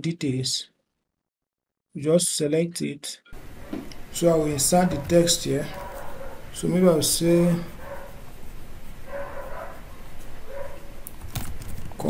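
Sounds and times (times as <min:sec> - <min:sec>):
distant dog barking: 0:03.5 - 0:03.9, 0:04.5 - 0:06.7, 0:07.5 - 0:08.3, 0:09.0 - 0:11.0.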